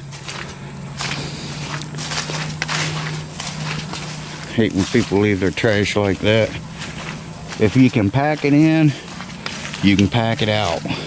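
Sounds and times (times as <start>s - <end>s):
footsteps on grass and leaves: 0.0s - 11.0s
steady low hum: 0.0s - 11.0s.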